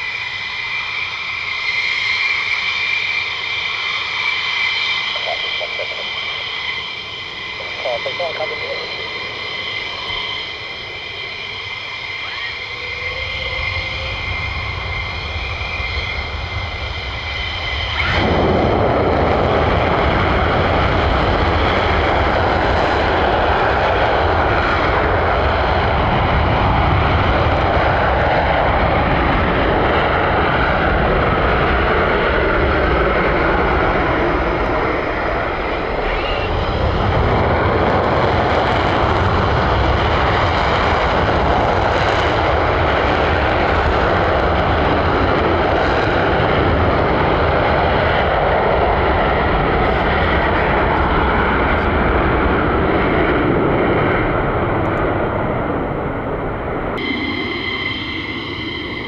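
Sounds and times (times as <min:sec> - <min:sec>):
jet afterburner roar: 0:00.0 - 0:59.0
jet engines whining: 0:00.0 - 0:59.0.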